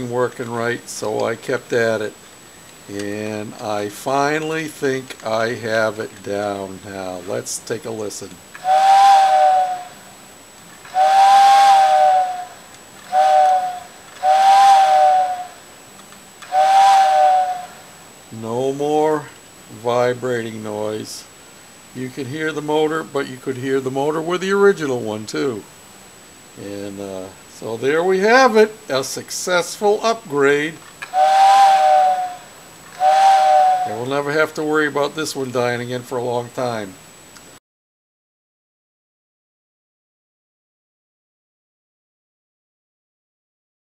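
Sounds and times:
toy train two-note whistle: 8.6 - 10.0, 10.8 - 15.6, 16.4 - 17.8, 31.0 - 34.1.

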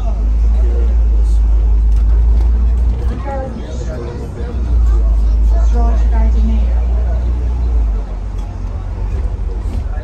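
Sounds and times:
bus rumbling from inside: 0.0 - 10.0.

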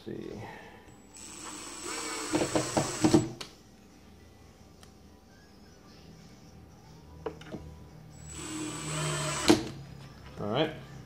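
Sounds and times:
cordless drill driving screw: 1.2 - 3.4, 8.2 - 9.7.

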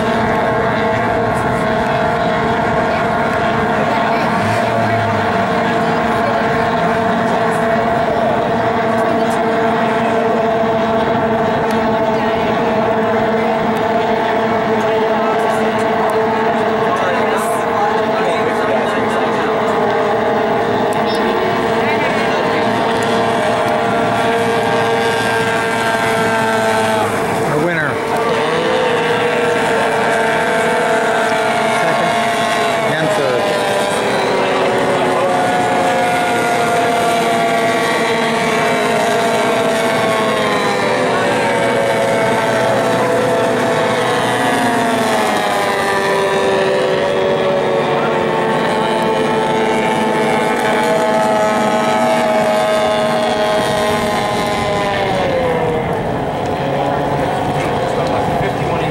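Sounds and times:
racing boat engines whining: 0.0 - 58.9.

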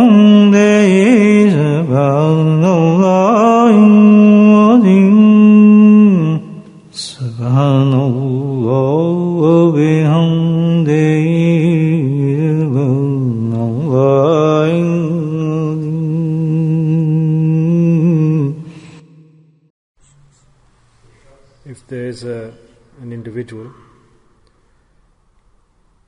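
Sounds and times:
person chanting a devotional melody: 0.0 - 20.4.

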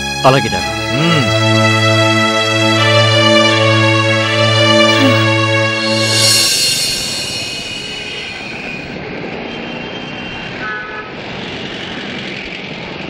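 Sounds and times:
passing vehicles rumble: 5.2 - 13.0
car horn toot: 10.6 - 11.2.

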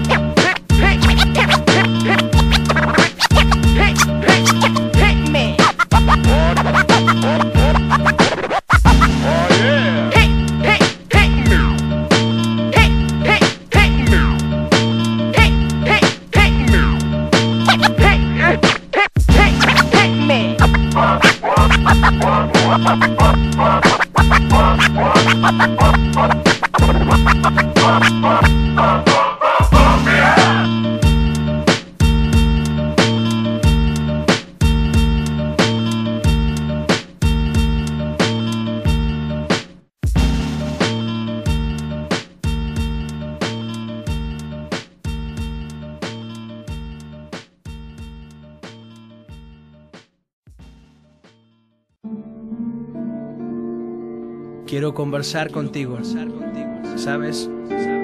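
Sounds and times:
turntable scratching: 0.0 - 11.8, 15.4 - 30.8
hip hop beat: 0.0 - 51.4.

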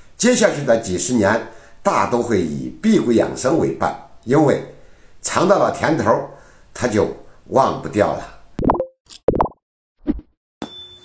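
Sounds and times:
bright chime tone ringing: 10.6 - 11.0.

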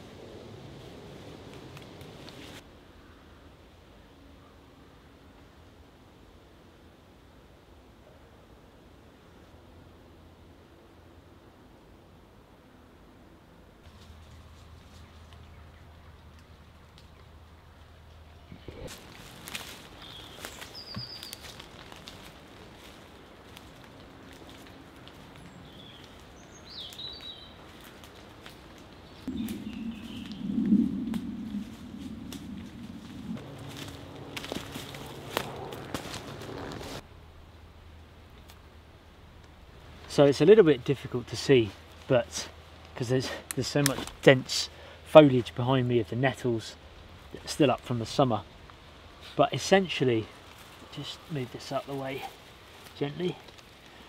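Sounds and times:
footsteps through leaf litter: 18.8 - 30.2, 32.8 - 37.0, 50.3 - 54.0
low rumble: 29.2 - 39.8.

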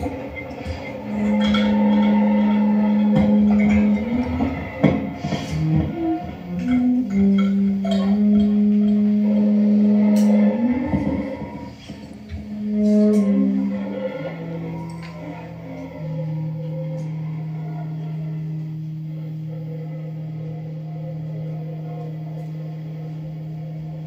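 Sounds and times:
experimental improvised music: 0.0 - 24.0.

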